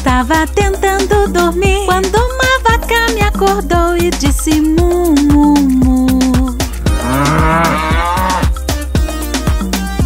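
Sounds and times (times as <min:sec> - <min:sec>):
upbeat children's song backing track: 0:00.0 - 0:10.0
cow mooing: 0:06.7 - 0:08.6.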